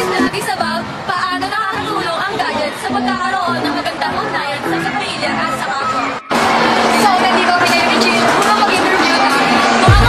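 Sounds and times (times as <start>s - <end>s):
background music: 0.0s - 10.0s
girls talking: 0.0s - 10.0s.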